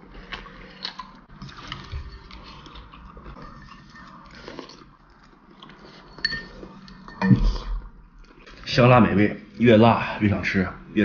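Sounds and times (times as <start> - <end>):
person chewing food: 0.0 - 8.6.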